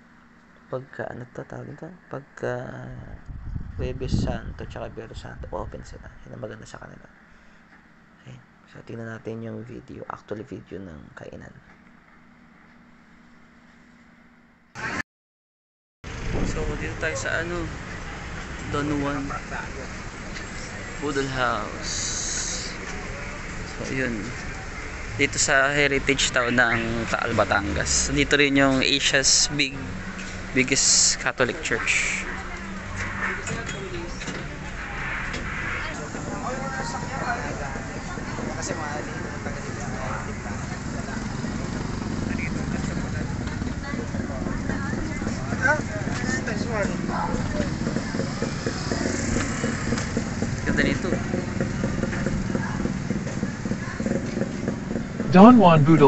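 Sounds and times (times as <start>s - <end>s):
low rumble of traffic: 0.0s - 15.0s, 16.0s - 56.0s
rush of street noise: 16.1s - 56.0s
indistinct voices: 18.7s - 41.0s, 55.2s - 56.0s.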